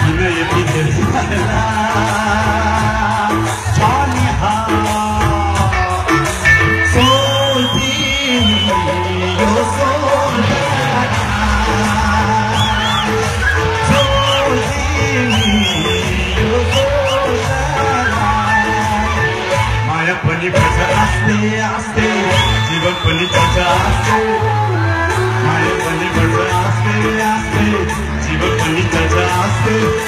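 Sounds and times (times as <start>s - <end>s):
band playing: 0.0s - 30.0s
man singing: 0.0s - 30.0s.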